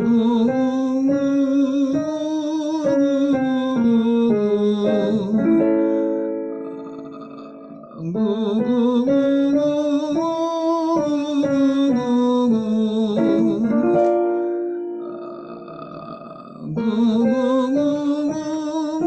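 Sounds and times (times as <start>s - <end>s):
man singing vocal exercise: 0.0s - 19.0s
piano: 0.0s - 19.0s.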